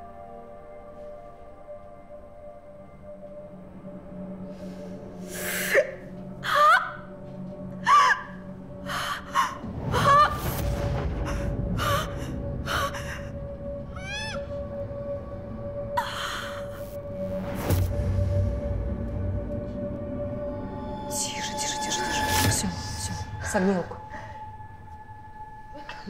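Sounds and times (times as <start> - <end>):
low rumble: 7.1 - 26.0.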